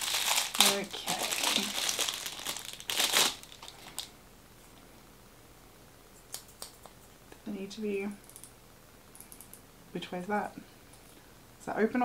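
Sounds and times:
plastic wrapping crinkling: 0.0s - 4.2s.

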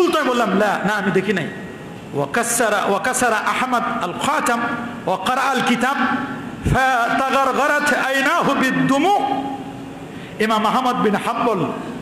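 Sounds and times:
man preaching: 0.0s - 9.8s, 10.4s - 12.0s.

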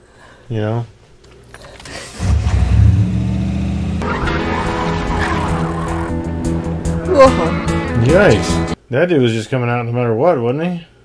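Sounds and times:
car engine revving: 2.2s - 8.8s
tyres squealing: 4.0s - 7.7s
soundtrack music: 4.0s - 8.8s.

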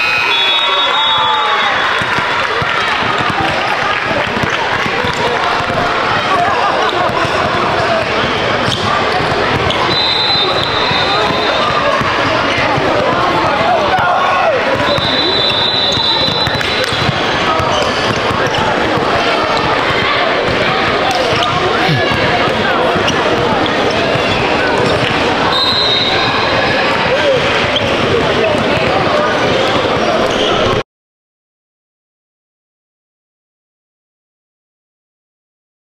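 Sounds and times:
many voices talking in a hall: 0.0s - 30.8s
basketballs bouncing on hardwood: 16.3s - 22.3s.

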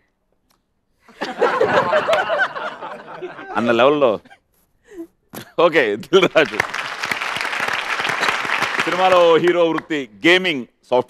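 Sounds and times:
hands clapping: 1.8s - 2.4s, 6.2s - 10.0s.

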